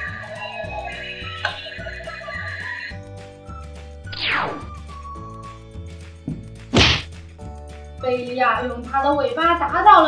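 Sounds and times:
background music: 0.0s - 10.0s
toy striking toy figure: 6.7s - 7.1s.

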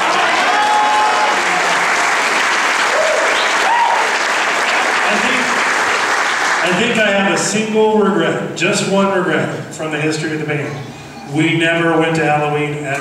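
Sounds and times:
audience applauding: 0.0s - 7.1s.

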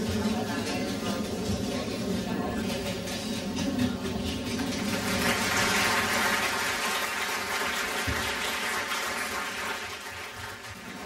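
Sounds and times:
audience applauding: 4.9s - 11.0s.

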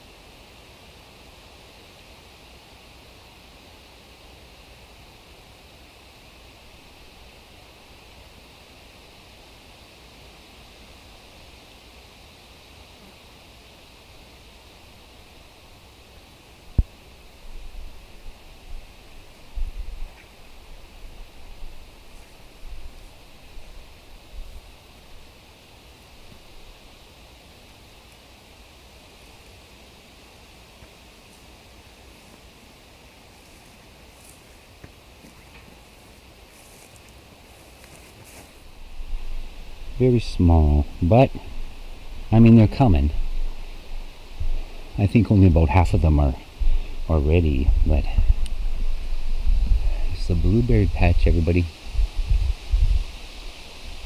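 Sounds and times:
steady outdoor hiss: 0.0s - 54.0s
wind buffeting microphone: 46.5s - 54.0s.

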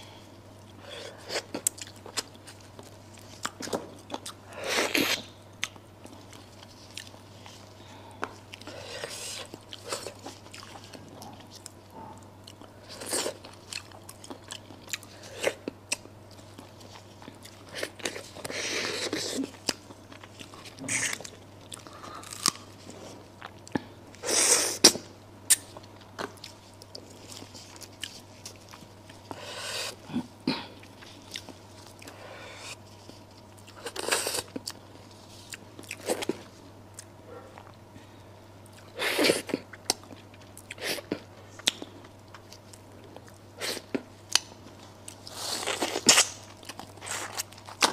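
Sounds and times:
person eating with crunching bites: 0.0s - 47.9s.

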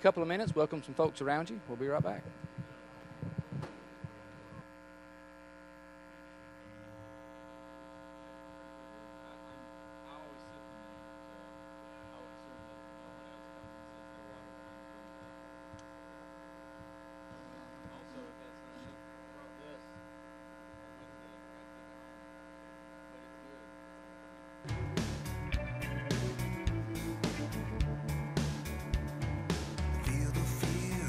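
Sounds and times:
electrical mains hum: 0.0s - 31.0s.

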